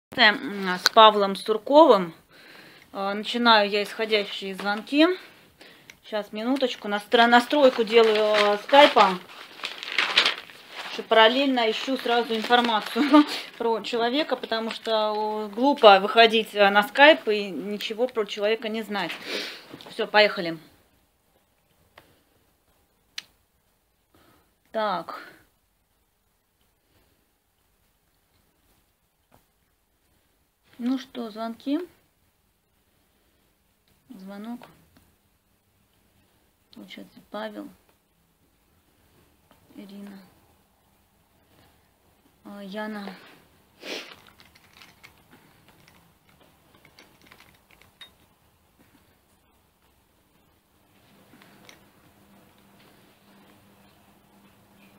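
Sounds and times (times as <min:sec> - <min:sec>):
typing on keyboard: 0:44.2 - 0:48.1.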